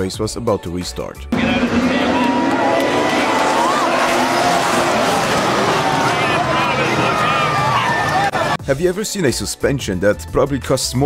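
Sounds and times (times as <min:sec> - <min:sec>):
racing car engines: 0:01.3 - 0:08.6
spectators shouting: 0:01.4 - 0:08.6.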